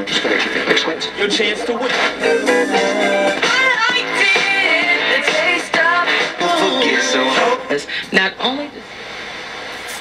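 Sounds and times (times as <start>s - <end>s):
song on small radio speaker: 0.0s - 10.0s.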